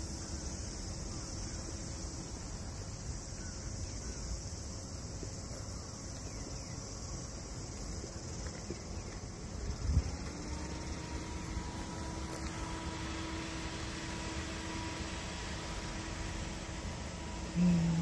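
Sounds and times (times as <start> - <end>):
insects chirring: 0.0 - 18.0
low rumbling outdoor noise: 0.0 - 18.0
steady hum: 0.0 - 18.0.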